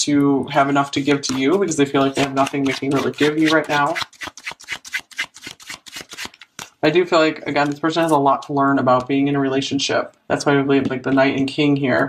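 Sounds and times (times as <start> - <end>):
person speaking: 0.0 - 4.3, 6.6 - 12.0
cards being shuffled: 1.0 - 6.8.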